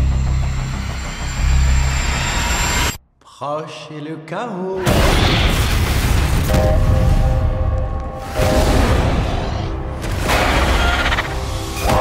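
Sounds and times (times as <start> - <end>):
deep rumbling bass drone: 0.0 - 3.0.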